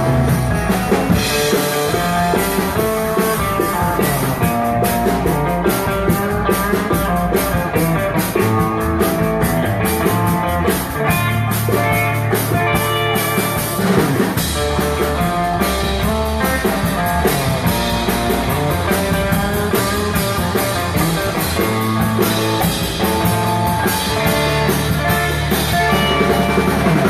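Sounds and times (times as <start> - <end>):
surf rock band playing: 0.0 - 27.0.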